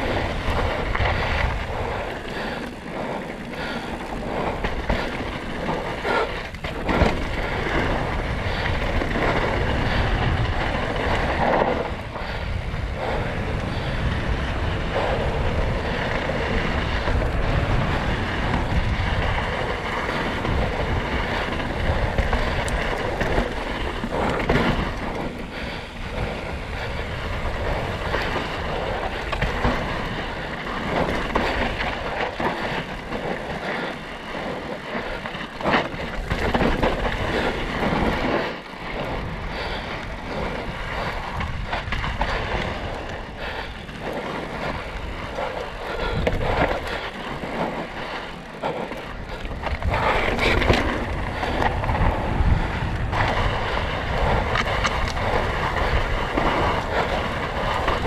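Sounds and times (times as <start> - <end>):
tyres rolling over dirt and rock: 0.0 - 58.0
wind on microphone: 0.0 - 58.0
bike knocks and rattles: 3.4 - 12.2.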